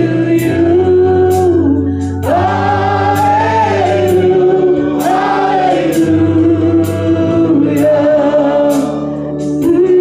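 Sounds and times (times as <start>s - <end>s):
voices singing worship song: 0.0s - 10.0s.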